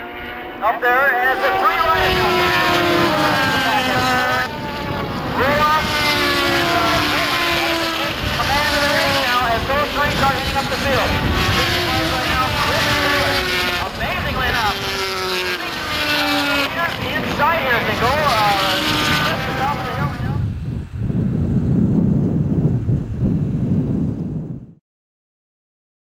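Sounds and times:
motorcycles racing past: 0:00.0 - 0:20.4.

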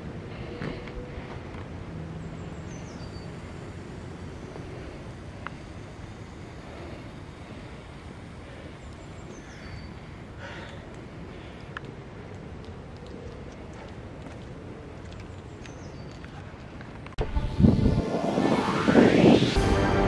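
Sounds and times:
small bird singing: 0:02.2 - 0:03.7, 0:08.6 - 0:10.8
wind rumble: 0:16.6 - 0:20.0.

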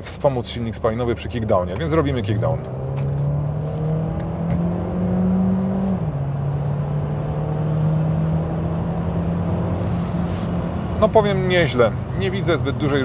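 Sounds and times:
car engine revving under acceleration: 0:01.0 - 0:13.0.

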